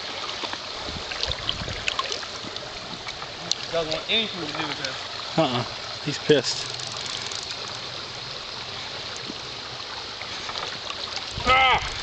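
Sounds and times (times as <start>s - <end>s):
stream running over stones: 0.0s - 12.0s.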